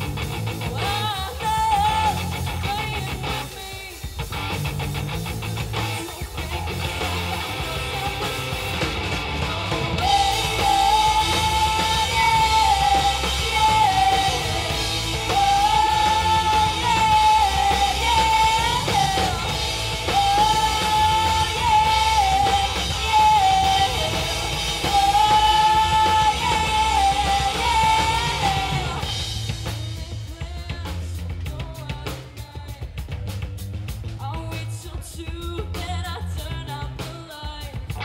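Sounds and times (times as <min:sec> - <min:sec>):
electric guitars: 0:00.0 - 0:30.3
drum kit: 0:00.0 - 0:38.0
woman singing lead vocal: 0:00.6 - 0:04.3, 0:05.8 - 0:33.0, 0:34.2 - 0:38.0.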